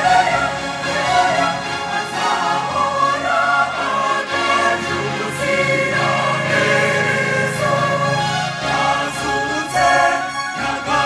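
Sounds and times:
mixed choir singing in harmony: 0.0s - 11.0s.

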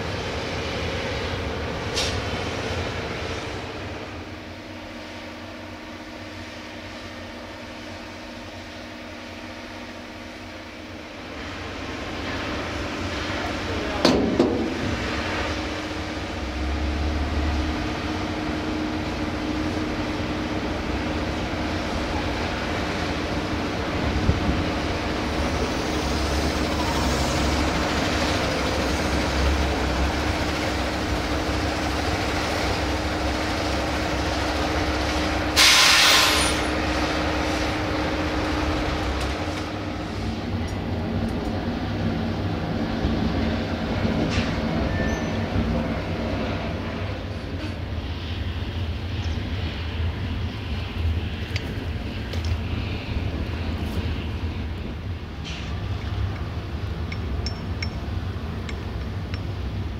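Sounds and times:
air brakes hissing: 1.9s - 2.3s, 35.5s - 36.8s.

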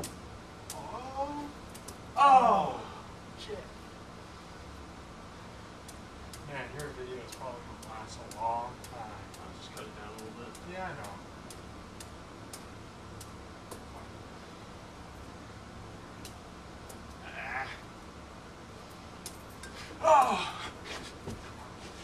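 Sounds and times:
loud falling cry: 2.2s - 3.0s, 20.0s - 20.8s.

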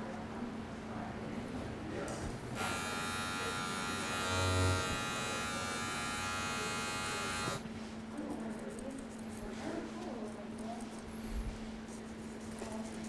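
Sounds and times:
electric hair clipper buzzing: 2.6s - 7.6s.

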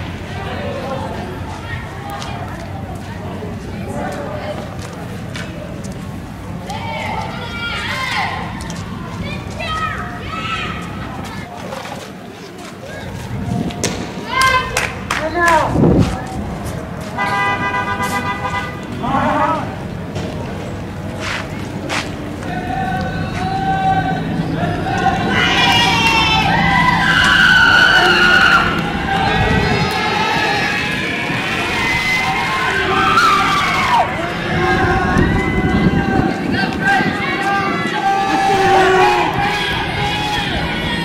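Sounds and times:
steady low rumble: 0.0s - 41.0s
people shouting high-pitched calls: 22.4s - 41.0s
tyres squealing: 22.4s - 41.0s.

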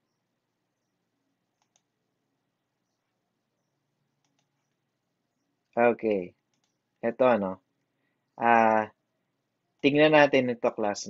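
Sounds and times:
faint clicks: 1.5s - 2.0s, 4.2s - 4.9s, 6.4s - 7.0s.

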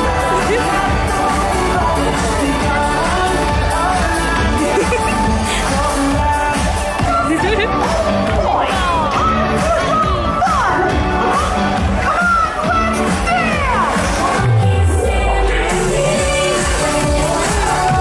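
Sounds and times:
parade music over loudspeakers: 0.0s - 18.0s.

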